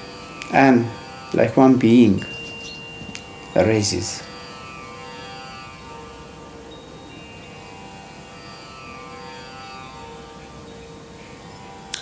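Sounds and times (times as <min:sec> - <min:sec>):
meditative drone music: 0:00.0 - 0:12.0.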